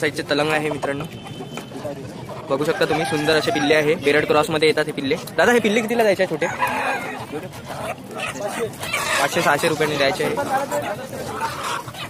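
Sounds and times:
rooster crowing: 2.7 - 4.0.

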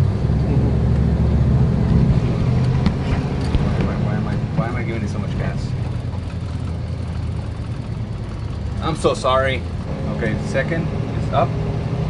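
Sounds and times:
car engine drone: 0.0 - 12.0.

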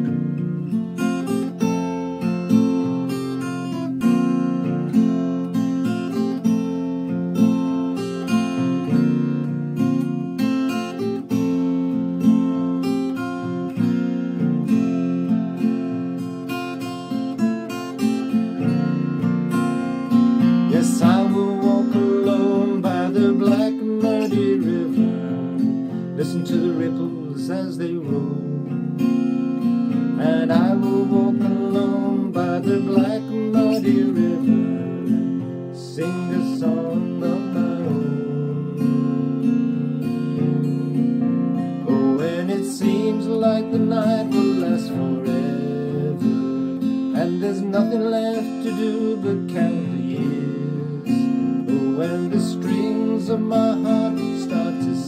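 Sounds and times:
acoustic guitar strumming: 0.0 - 55.0
man singing: 20.5 - 28.8, 30.1 - 39.4, 41.8 - 55.0.

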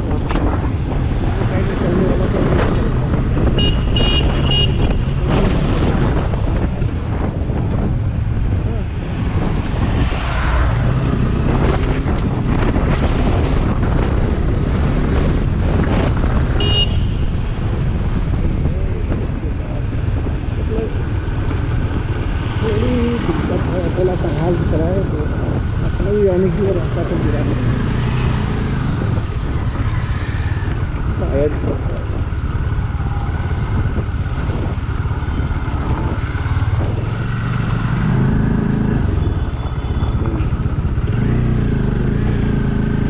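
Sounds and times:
wind buffeting microphone: 0.0 - 42.9
motorcycle engine rumble: 0.0 - 43.0.

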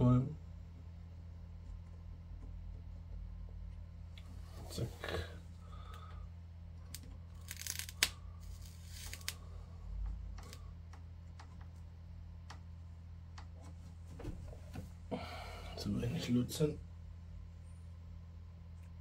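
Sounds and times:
steady low hum: 0.0 - 19.0
short crackle: 6.9 - 9.5.

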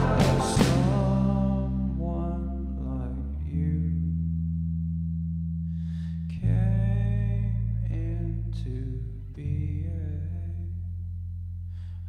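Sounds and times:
band playing sustained chords: 0.0 - 2.4.

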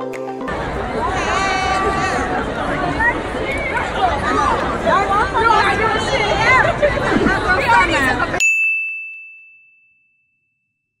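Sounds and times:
crowd chattering: 0.3 - 8.4.

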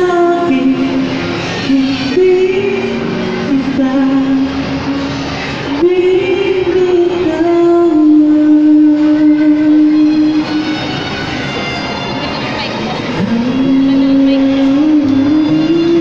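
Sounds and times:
person singing through pa: 0.0 - 5.0, 5.6 - 10.8, 13.1 - 16.0
instrumental backing track: 0.0 - 16.0.

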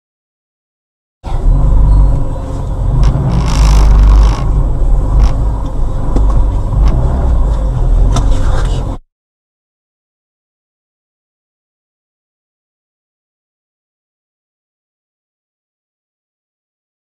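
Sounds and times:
car engine and road rumble: 1.2 - 9.0.

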